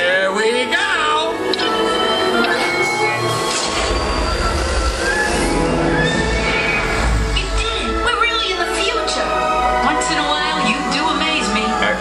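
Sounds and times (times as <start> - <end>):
film music: 0.0 - 12.0.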